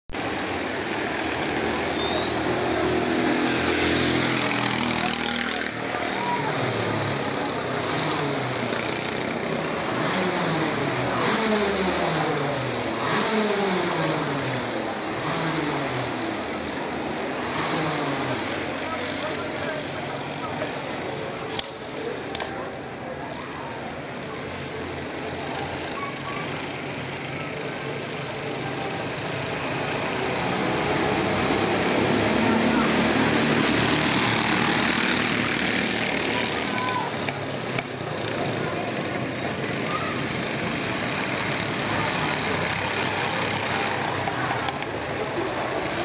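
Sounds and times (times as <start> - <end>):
racing kart engines: 0.1 - 46.0.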